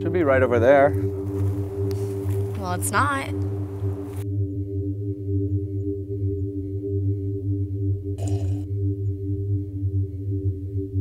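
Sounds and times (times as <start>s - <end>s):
low droning chord: 0.0s - 11.0s.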